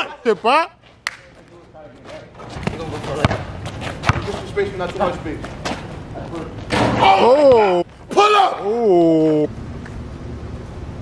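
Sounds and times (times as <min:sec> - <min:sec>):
basketball bouncing on asphalt: 0:02.4 - 0:06.0
players' voices and shouts: 0:06.8 - 0:09.5.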